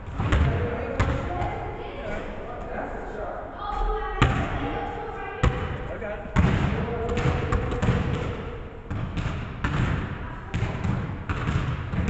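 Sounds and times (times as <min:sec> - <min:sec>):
basketball bouncing on wooden floor: 0:00.1 - 0:01.2, 0:06.4 - 0:12.0.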